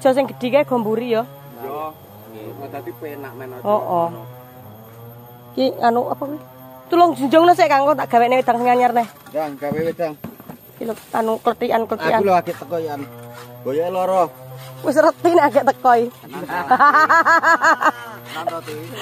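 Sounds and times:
people talking: 0.0s - 4.2s, 5.6s - 10.2s, 10.8s - 13.1s, 13.7s - 19.0s.

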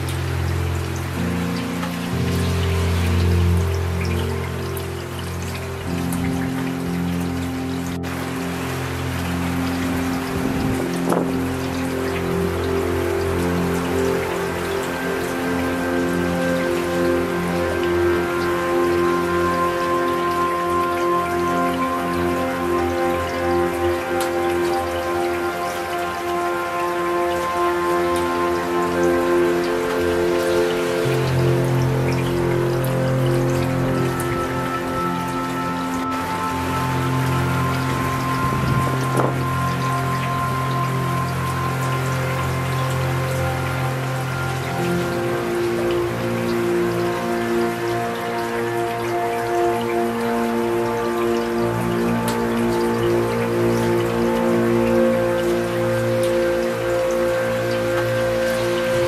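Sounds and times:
slow ambient music: 0.0s - 59.0s
steady rain falling: 0.0s - 59.0s.

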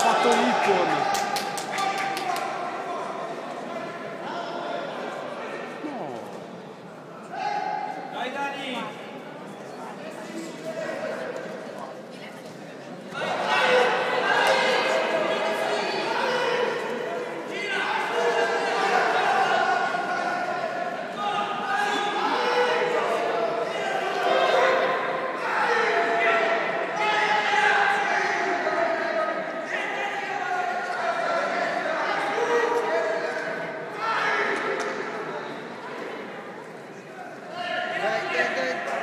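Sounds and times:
voices calling out in a hall: 0.0s - 39.0s.

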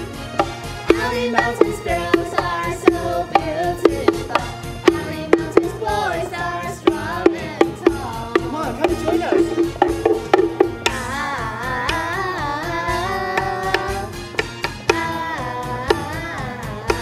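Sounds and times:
sharp percussive beat: 0.0s - 17.0s
singing voice gliding in pitch: 10.8s - 14.2s, 14.9s - 17.0s.

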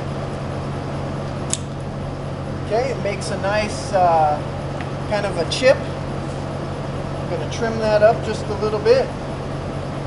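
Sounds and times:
ventilation fans humming: 0.0s - 10.0s
knife cutting click: 1.5s - 1.7s.

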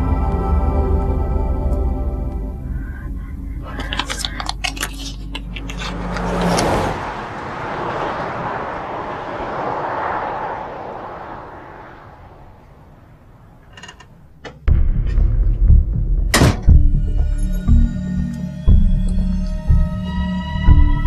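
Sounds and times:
cars driving past: 0.0s - 14.8s
loud music with deep thuds: 14.7s - 20.0s.

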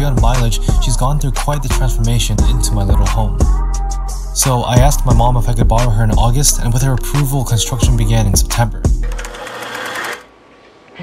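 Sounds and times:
low rumble: 4.6s - 8.8s
fast mechanical rattle: 9.0s - 10.3s.

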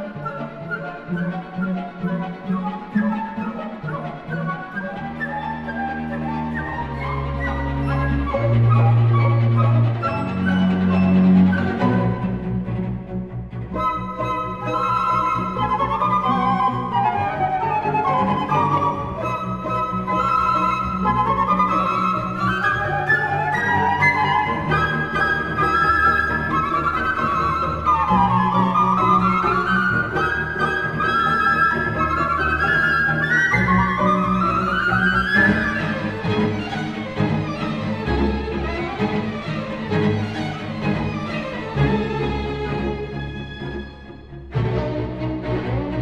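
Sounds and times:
flutes: 0.0s - 12.7s, 13.5s - 46.0s
string orchestra: 0.0s - 46.0s.

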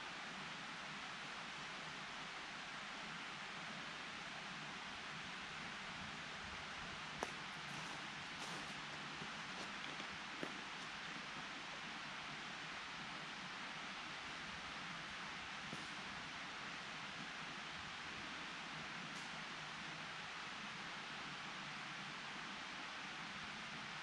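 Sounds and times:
forest ambience hiss: 0.0s - 24.0s
footsteps on dry leaves: 7.2s - 10.9s.

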